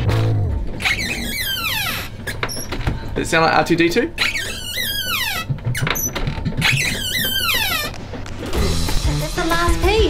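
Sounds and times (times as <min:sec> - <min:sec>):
cupboard door hinge squeaking: 0:00.8 - 0:03.0, 0:04.2 - 0:08.0.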